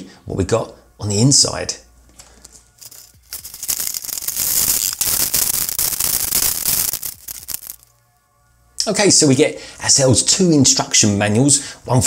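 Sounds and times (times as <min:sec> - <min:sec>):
packaging crackling and rustling: 0:02.8 - 0:08.0.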